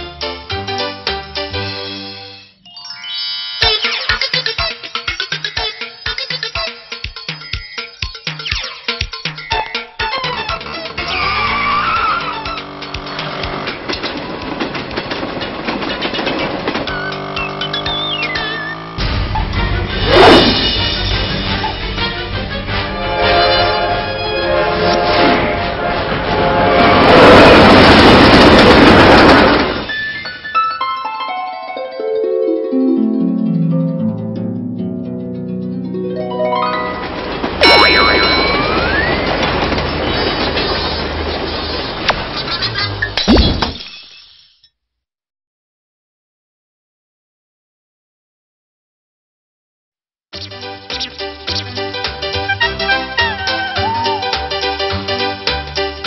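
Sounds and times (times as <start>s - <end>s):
background music: 0.0s - 14.6s, 17.4s - 26.7s, 30.9s - 39.4s, 50.4s - 56.0s
cartoon tyres screeching: 9.7s - 13.9s, 16.7s - 20.6s
train rumbling past: 10.6s - 30.0s, 36.2s - 43.0s.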